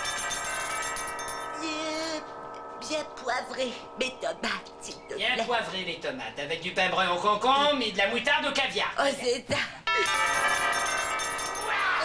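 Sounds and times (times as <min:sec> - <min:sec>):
handbell ringing: 0:00.0 - 0:01.7, 0:09.9 - 0:12.0.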